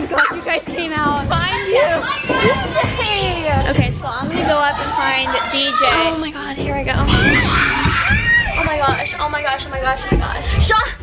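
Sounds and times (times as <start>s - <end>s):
children shouting and chattering: 0.0s - 11.0s
woman speaking: 2.8s - 11.0s.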